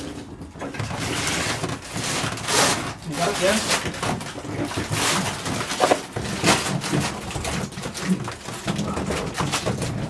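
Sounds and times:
plastic bag rustling: 0.0s - 10.0s
shuffling and bumping: 0.4s - 10.0s.

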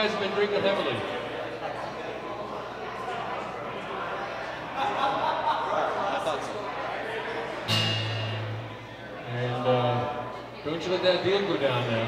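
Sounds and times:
acoustic guitar chord strum: 7.6s - 8.9s.

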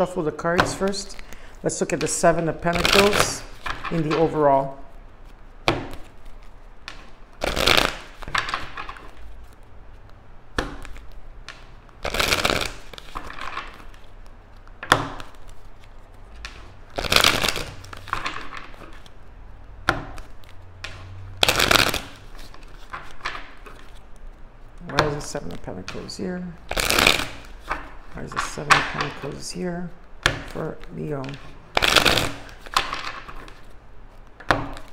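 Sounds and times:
cards being shuffled: 0.0s - 34.9s.

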